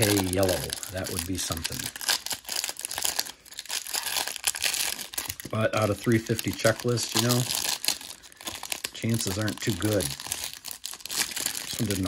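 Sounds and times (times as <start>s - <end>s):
plastic wrapper crinkling: 0.0s - 12.0s.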